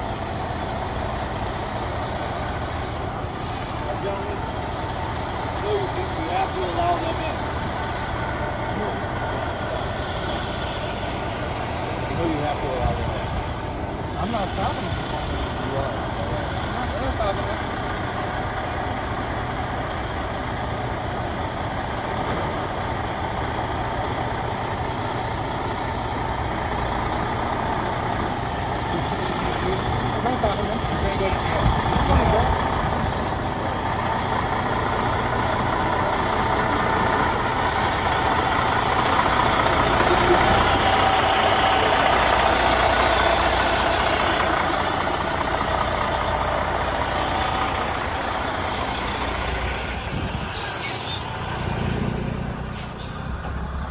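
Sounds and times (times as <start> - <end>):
truck engine rolling past: 0.0 - 53.9.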